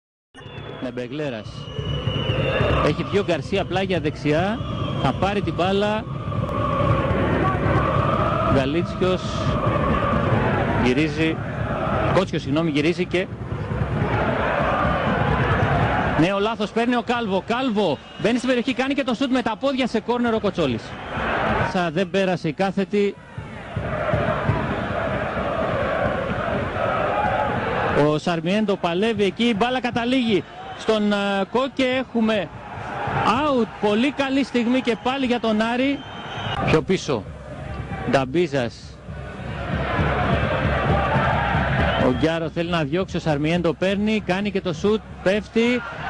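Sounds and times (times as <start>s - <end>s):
stadium crowd roar: 0.4s - 46.0s
crowd chanting: 6.0s - 12.4s, 13.6s - 16.2s, 20.9s - 21.7s, 23.3s - 28.0s, 28.9s - 36.7s, 39.0s - 42.1s, 45.0s - 46.0s.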